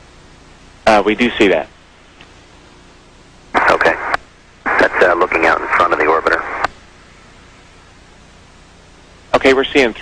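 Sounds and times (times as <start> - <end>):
voice over radio link: 3.6 - 6.7.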